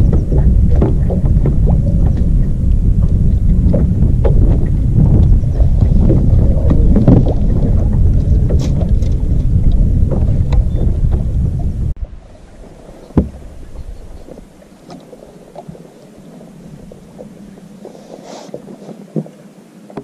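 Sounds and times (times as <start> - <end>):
wind buffeting microphone: 0.0 - 17.9.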